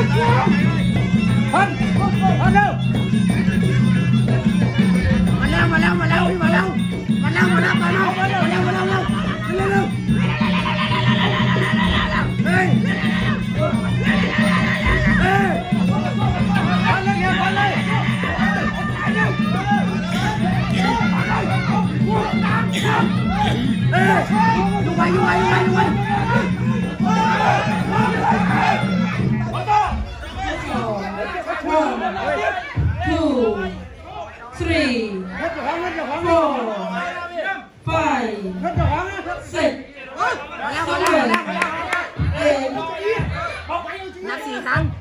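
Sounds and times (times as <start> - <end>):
pulsing drum beat: 0.0 - 31.2
people talking over one another: 0.0 - 45.0.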